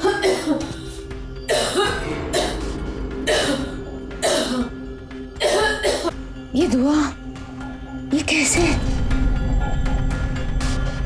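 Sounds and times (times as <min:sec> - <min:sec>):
woman coughing: 0:00.0 - 0:06.2
background music with held tones: 0:00.0 - 0:11.0.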